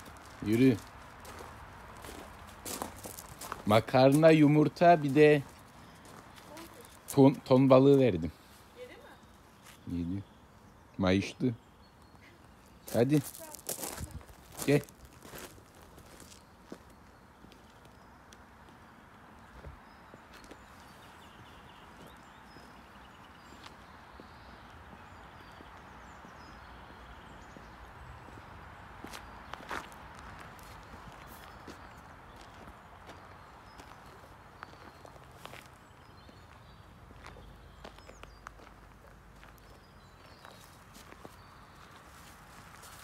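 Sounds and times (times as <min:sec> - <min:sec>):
footsteps on a road: 0:00.0 - 0:09.9, 0:12.0 - 0:43.0.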